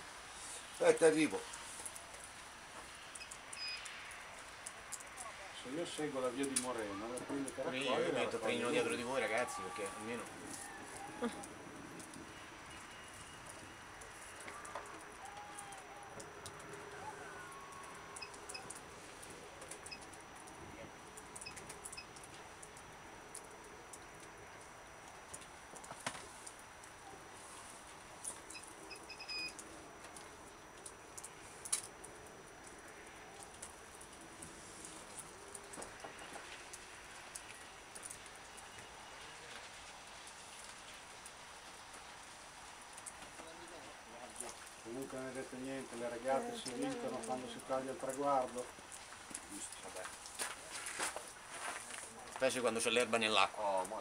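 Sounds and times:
murmur of distant voices: 5.0s - 11.7s.

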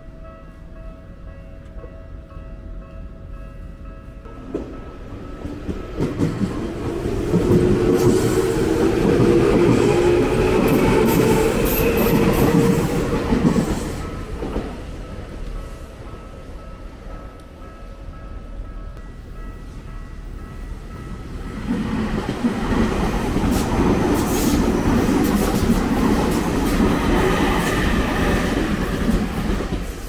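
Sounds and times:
train wheels clattering on rails: 4.3s - 15.6s, 20.9s - 30.0s.

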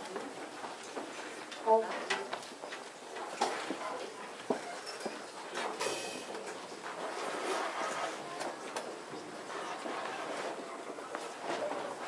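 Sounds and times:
faint room rustle: 0.0s - 12.0s.

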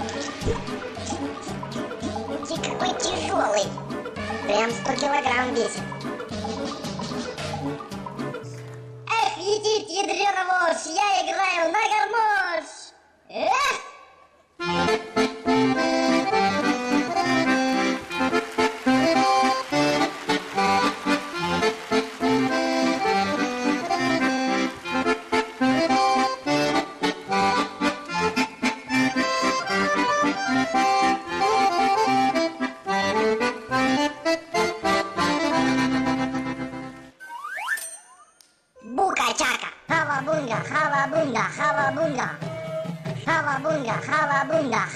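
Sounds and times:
button accordion folk tune: 0.0s - 8.4s, 14.6s - 37.2s.

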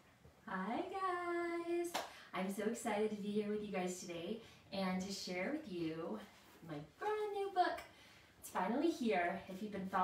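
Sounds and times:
hand clap: 1.9s - 2.2s.

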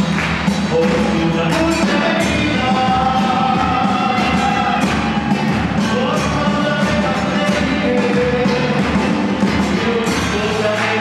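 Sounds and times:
drum kit and percussion hits: 0.0s - 11.0s
live band playing: 0.0s - 11.0s.

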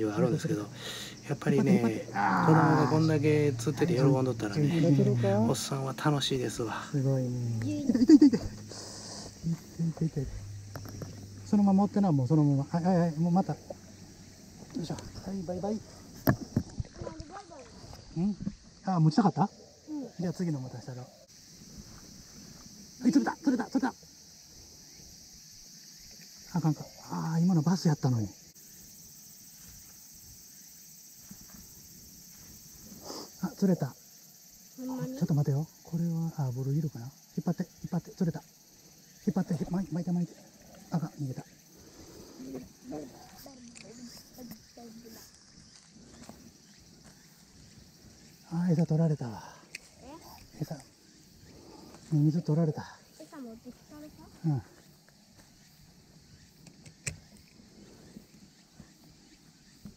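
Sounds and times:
insects chirping: 0.0s - 59.9s.

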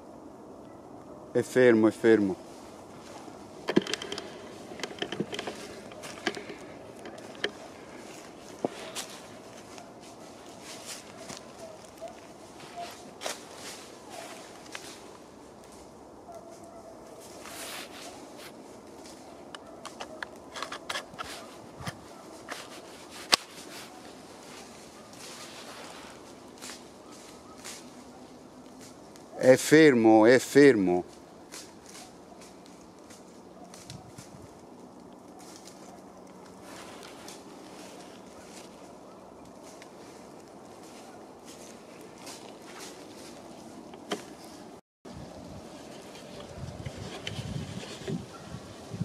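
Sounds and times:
dry leaves and twigs crackling underfoot: 0.0s - 49.0s.

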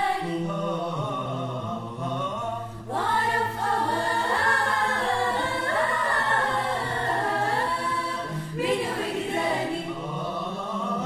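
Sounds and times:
choir singing a cappella: 0.0s - 11.0s.

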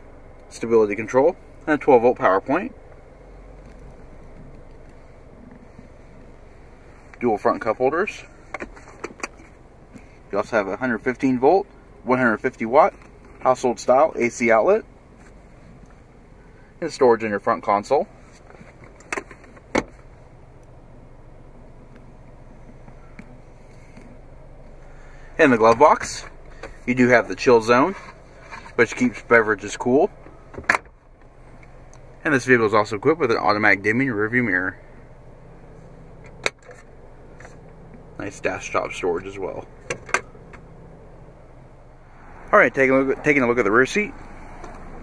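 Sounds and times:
sharp clicks inside car cabin: 18.8s - 20.0s, 30.2s - 31.7s, 36.2s - 38.0s, 39.8s - 40.7s.

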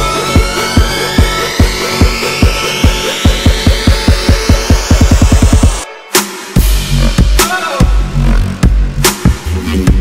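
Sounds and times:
rising synth sweep: 0.0s - 5.9s
electronic dance music: 0.0s - 10.0s.

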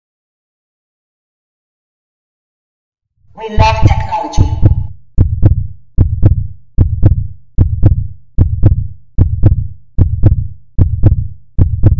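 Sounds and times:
heartbeat double thump: 3.6s - 11.9s.

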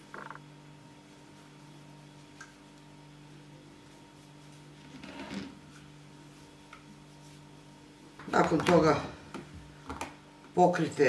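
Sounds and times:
steady low hum: 0.0s - 11.0s
cloth rubbing glass jar: 4.3s - 7.5s.

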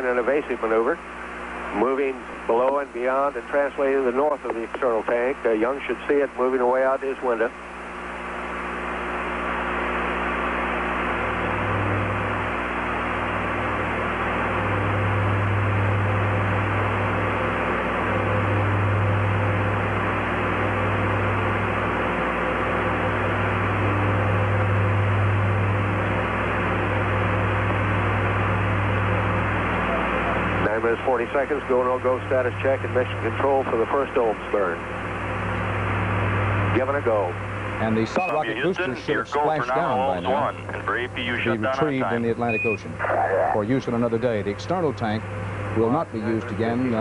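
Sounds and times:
low hum: 7.6s - 47.0s.

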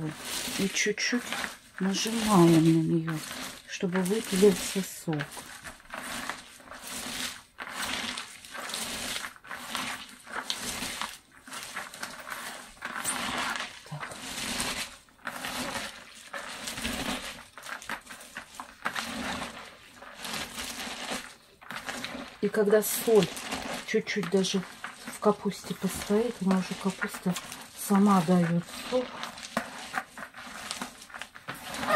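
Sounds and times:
wet crunchy cabbage rustle: 0.0s - 31.9s.

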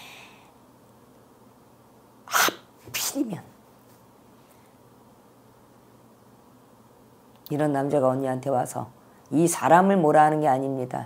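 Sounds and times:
woman's breathy vocal bursts: 2.3s - 2.7s.

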